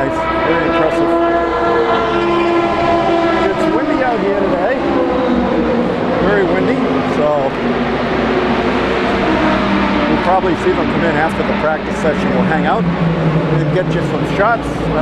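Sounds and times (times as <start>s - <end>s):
race car engines passing: 0.0s - 15.0s.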